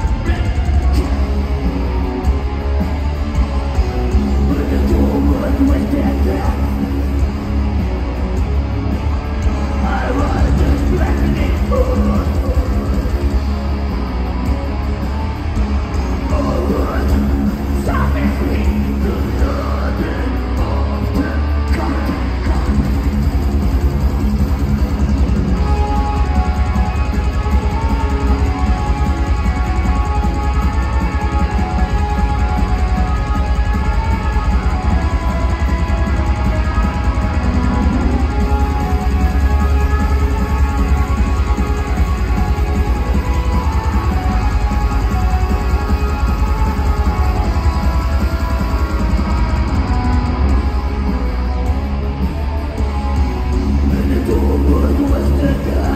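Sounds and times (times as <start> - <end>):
live thrash metal band: 0.0 - 55.9.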